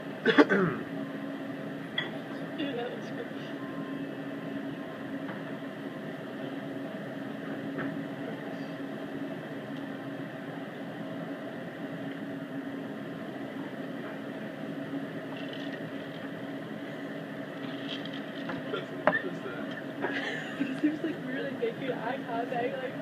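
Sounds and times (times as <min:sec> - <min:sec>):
low mechanical hum: 0:00.0 - 0:23.0
restaurant dining room noise: 0:00.0 - 0:23.0.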